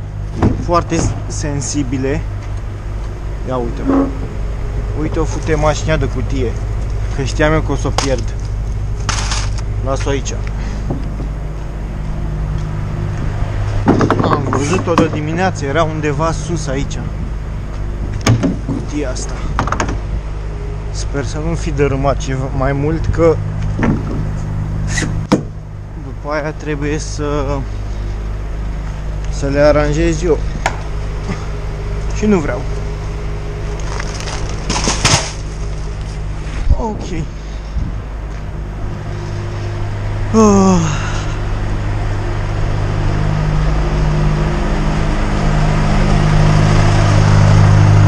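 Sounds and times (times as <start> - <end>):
diesel truck engine idling: 0.0 - 48.0
steady low hum: 0.0 - 48.0
boxes rustling and scraping: 8.0 - 9.6, 33.7 - 36.7.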